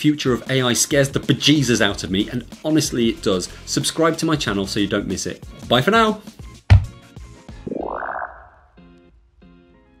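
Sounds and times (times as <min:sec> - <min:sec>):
rising synth sweep: 0:07.6 - 0:08.7.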